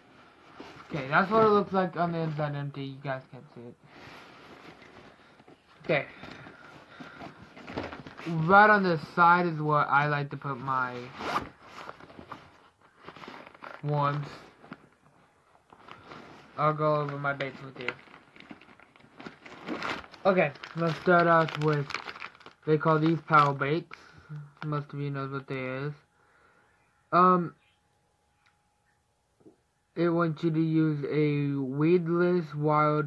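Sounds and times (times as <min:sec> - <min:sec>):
fabric bag rustling: 0:03.9 - 0:08.6, 0:10.6 - 0:23.4
plastic packets crinkling: 0:10.8 - 0:24.8.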